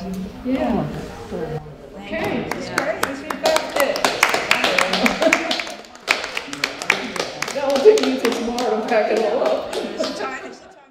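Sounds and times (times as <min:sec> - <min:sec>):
people clapping: 0:02.2 - 0:10.7.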